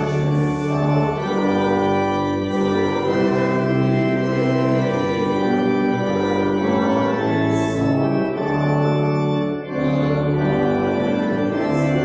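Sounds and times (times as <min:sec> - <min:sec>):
church organ playing a hymn: 0:00.0 - 0:12.0.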